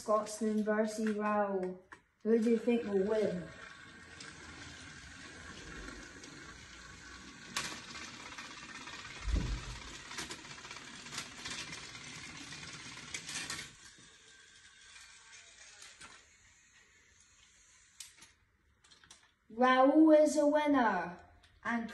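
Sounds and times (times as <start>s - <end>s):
toy train motor whirring: 0.0s - 19.3s.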